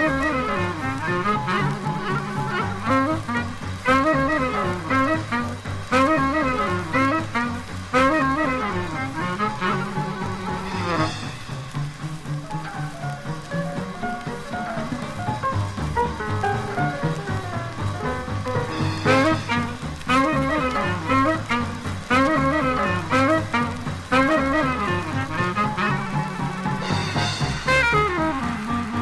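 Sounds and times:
swing big band playing: 0.0s - 29.0s.

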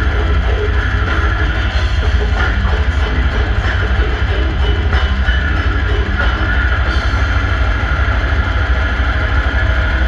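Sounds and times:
live death metal band: 0.0s - 10.0s.

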